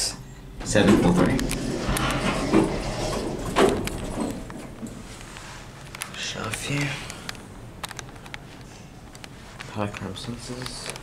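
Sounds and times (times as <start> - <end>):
elevator doors sliding: 0.6 - 5.8.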